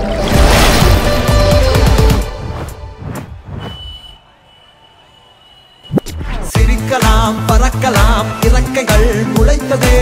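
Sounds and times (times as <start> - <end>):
song music hits: 6.5 - 10.0.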